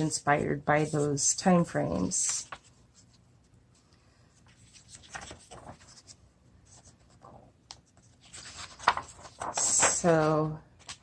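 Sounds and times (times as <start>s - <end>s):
paper page rustling: 0.6s - 11.0s.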